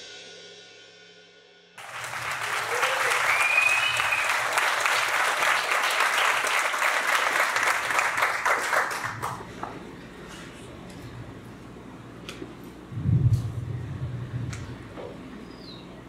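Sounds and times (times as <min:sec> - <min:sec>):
audience applauding: 0:01.8 - 0:10.0.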